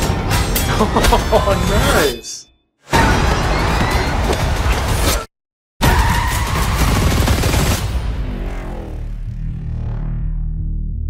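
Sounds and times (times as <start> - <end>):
rapid crackling action effects: 6.7 - 10.2
low droning score: 8.0 - 11.0.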